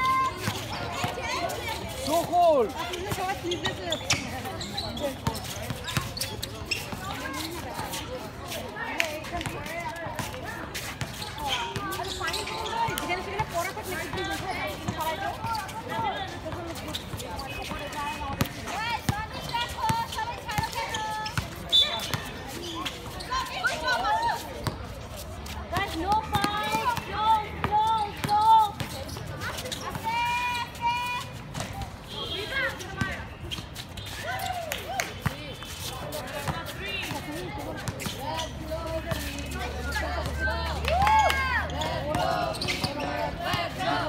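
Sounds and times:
voices calling and shouting: 0.0s - 44.0s
people calling out: 38.3s - 44.0s.

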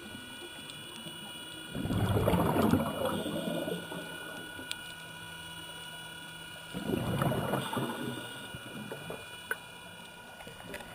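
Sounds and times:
underwater exhaled bubbles: 1.7s - 4.6s, 6.7s - 9.3s.

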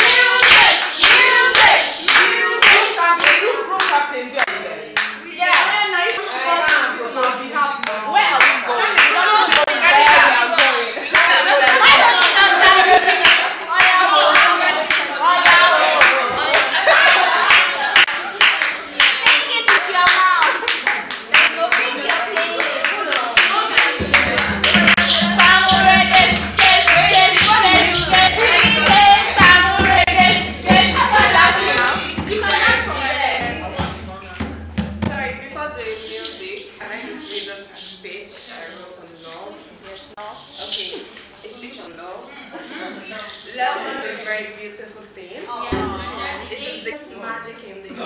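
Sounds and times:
women clapping in rhythm: 0.0s - 35.2s
voices singing and calling out: 0.0s - 41.4s.

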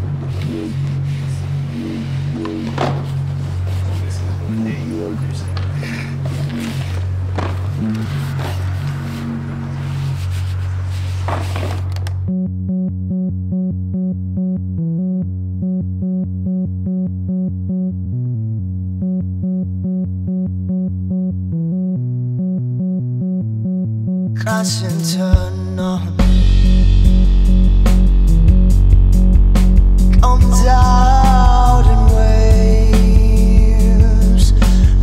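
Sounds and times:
instrumental song music: 0.0s - 35.0s
pulsing low and mid notes: 0.0s - 35.0s
sustained bass notes: 0.0s - 35.0s.

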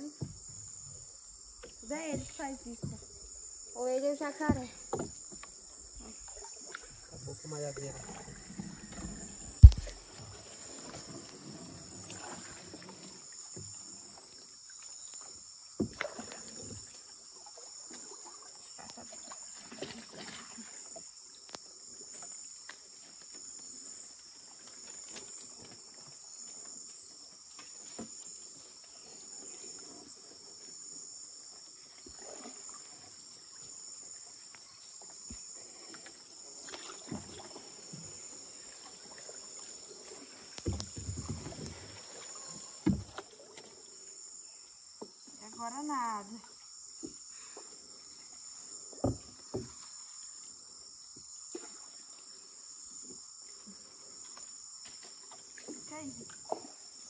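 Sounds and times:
knocks and splashes from canoe: 0.0s - 21.2s, 27.2s - 29.0s, 31.8s - 34.3s, 35.1s - 44.3s, 44.9s - 57.0s
insects chorus: 0.0s - 57.0s.

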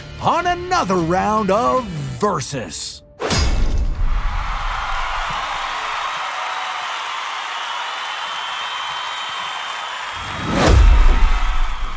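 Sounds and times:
deep whooshing hit: 10.3s - 11.9s.

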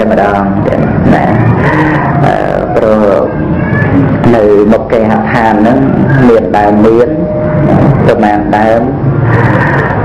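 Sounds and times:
man speaking into microphone: 0.0s - 3.4s, 4.1s - 9.0s.

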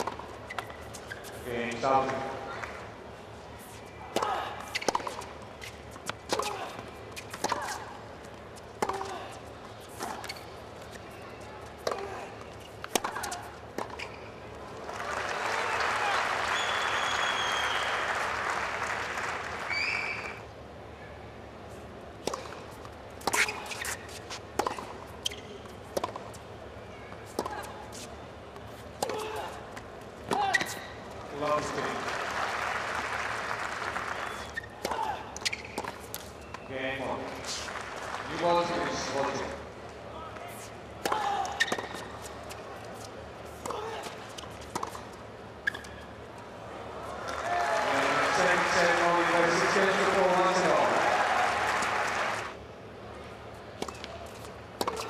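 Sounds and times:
racket striking tennis ball: 8.8s - 9.1s, 11.8s - 14.0s, 22.2s - 22.6s, 23.2s - 25.0s, 25.9s - 26.3s, 27.3s - 27.7s, 30.2s - 30.9s, 53.8s - 55.0s
crowd applause: 14.8s - 19.8s, 31.6s - 34.5s, 47.3s - 52.6s
ball bouncing on court: 54.8s - 55.0s.

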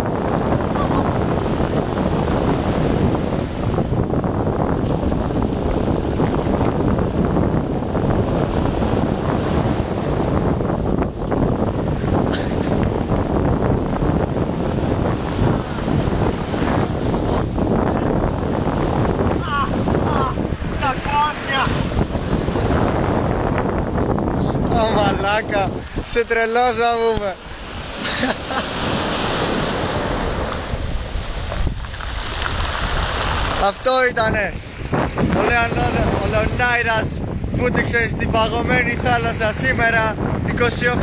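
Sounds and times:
sea waves washing: 0.0s - 41.0s
wind buffeting microphone: 0.0s - 41.0s.

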